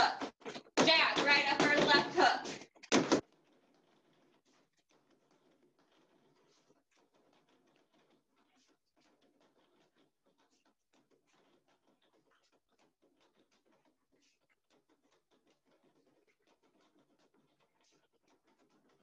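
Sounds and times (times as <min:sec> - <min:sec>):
boxing gloves hitting punching bag: 0:02.9 - 0:03.2.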